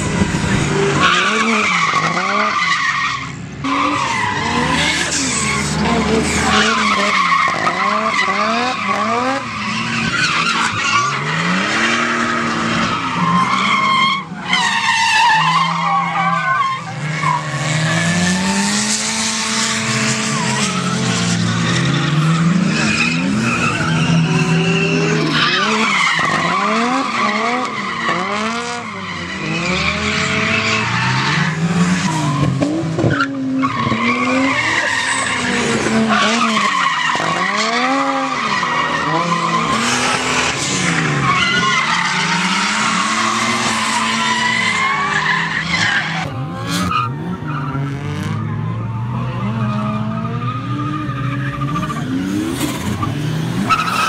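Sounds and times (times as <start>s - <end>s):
car engines revving: 0.0s - 54.0s
tyres squealing and skidding: 0.0s - 54.0s.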